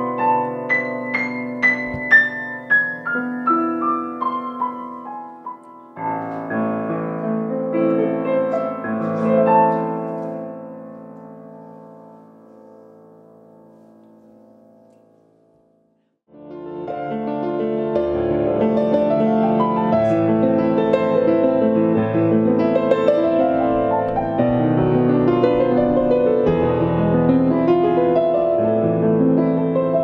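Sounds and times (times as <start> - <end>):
solo grand piano: 0.0 - 30.0.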